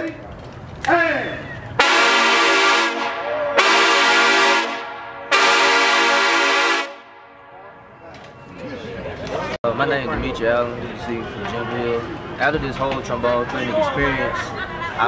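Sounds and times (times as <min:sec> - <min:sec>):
trombones playing sustained chords: 0:01.8 - 0:07.8.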